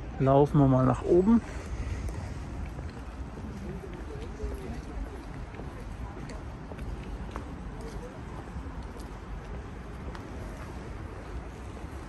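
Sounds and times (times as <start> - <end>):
low rumble of city and construction: 0.0 - 12.0.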